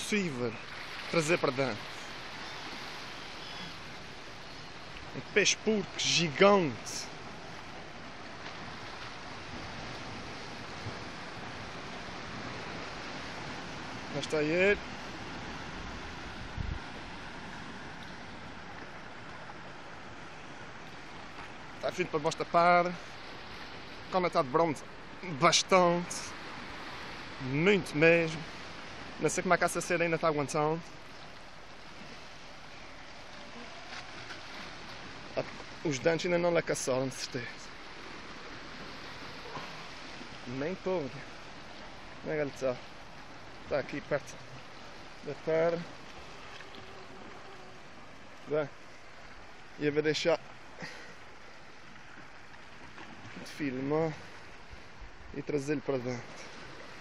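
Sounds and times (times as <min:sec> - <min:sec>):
choppy sea water: 0:00.0 - 0:57.0
wind noise on microphone: 0:15.0 - 0:18.6.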